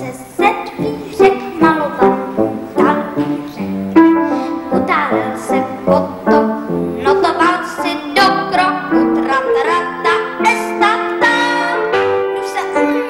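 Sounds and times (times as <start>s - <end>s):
boy singing: 0.0s - 13.0s
instrumental accompaniment: 0.0s - 13.0s.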